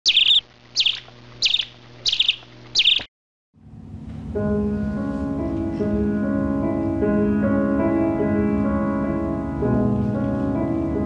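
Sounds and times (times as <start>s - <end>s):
bird chirping: 0.0s - 3.1s
soft music: 3.6s - 11.0s.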